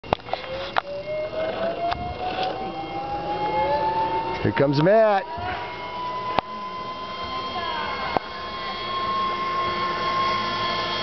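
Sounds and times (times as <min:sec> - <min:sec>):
pulleys whining on cable: 0:00.0 - 0:11.0.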